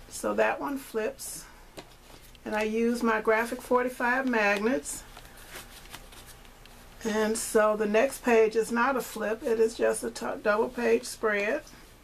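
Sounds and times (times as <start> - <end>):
paper pages rustling: 1.7 - 2.8, 4.1 - 7.0.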